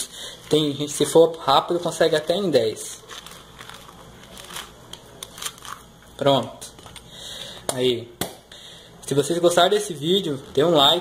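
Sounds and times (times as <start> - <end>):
orange rind tearing: 3.0 - 5.9.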